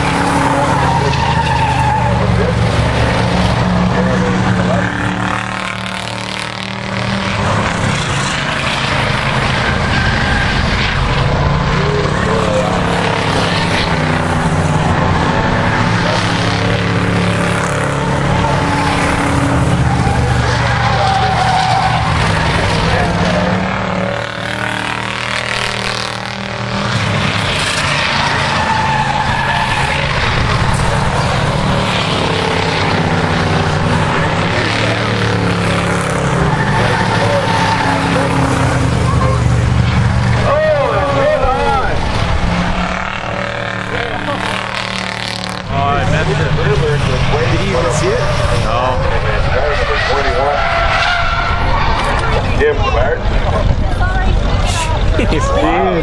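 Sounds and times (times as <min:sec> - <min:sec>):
racing car engines: 0:00.0 - 0:56.0
tire squeals: 0:00.0 - 0:56.0.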